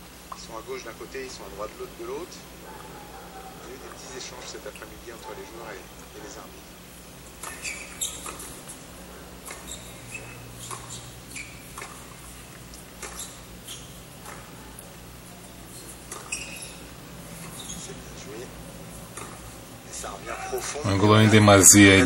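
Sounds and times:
shoes squeaking on court: 7.4 - 8.8, 9.4 - 18.4, 19.0 - 19.6
racquet striking tennis ball: 9.4 - 12.3, 15.7 - 17.8.

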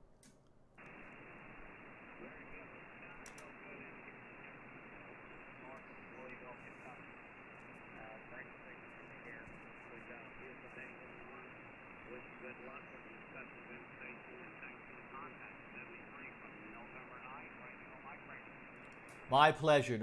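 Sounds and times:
faint voice through radio: 0.8 - 20.0
radio static hiss: 0.8 - 20.0.

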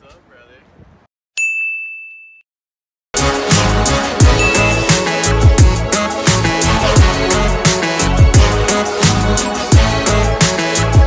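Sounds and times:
high-pitched bell ding: 1.4 - 2.4, 4.4 - 5.0.

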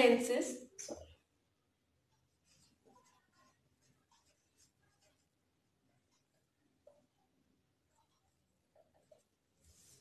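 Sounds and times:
marker pen writing on whiteboard: 0.9 - 10.0.

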